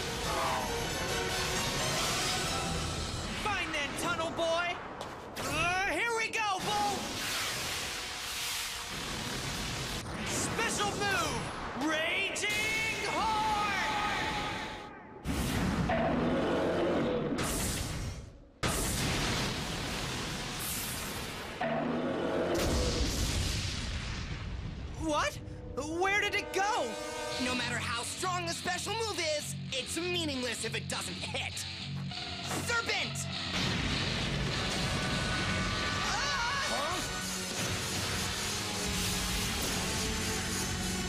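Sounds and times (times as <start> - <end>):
dramatic music: 0.0 - 3.8, 31.6 - 41.0.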